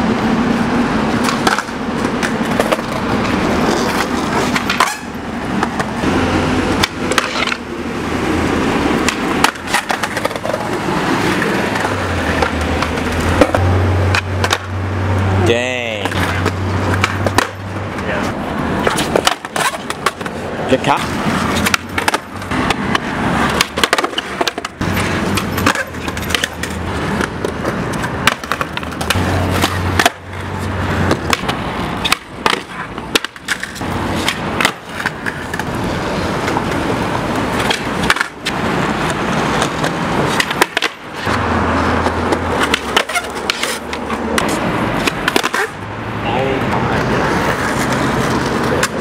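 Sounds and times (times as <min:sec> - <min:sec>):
skateboard wheels rolling on concrete: 0:00.0 - 0:49.0
skateboard pops and clacks: 0:01.2 - 0:05.9, 0:06.8 - 0:07.6, 0:09.0 - 0:14.7, 0:16.0 - 0:18.0, 0:18.8 - 0:20.4, 0:21.4 - 0:30.4, 0:31.0 - 0:35.8, 0:36.4 - 0:41.4, 0:42.0 - 0:45.8, 0:47.5 - 0:49.0.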